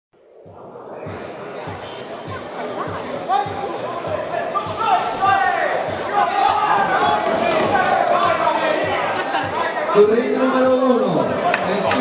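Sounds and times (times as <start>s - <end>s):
crowd chatter: 0.2s - 12.0s.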